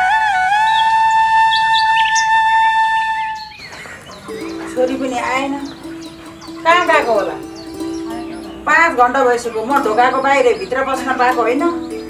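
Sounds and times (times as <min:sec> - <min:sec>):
birds chirping: 0:00.0 - 0:12.0
flute melody: 0:00.0 - 0:12.0.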